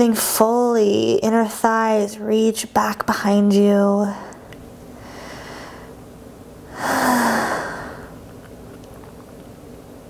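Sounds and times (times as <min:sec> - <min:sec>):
woman breathing in: 0:05.0 - 0:06.0, 0:06.7 - 0:08.2
woman exhaling with a sigh: 0:06.7 - 0:08.2.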